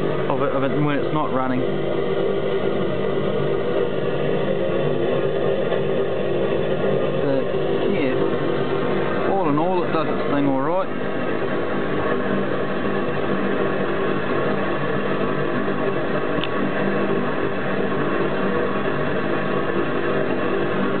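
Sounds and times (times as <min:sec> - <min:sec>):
constant hum: 0:00.0 - 0:21.0
oil burner and blower noise: 0:00.0 - 0:21.0.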